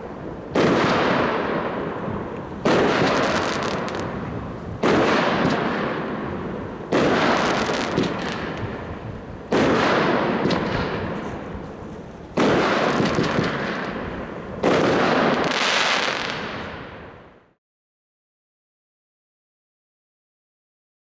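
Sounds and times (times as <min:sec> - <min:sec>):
firework bangs: 0:00.0 - 0:17.6.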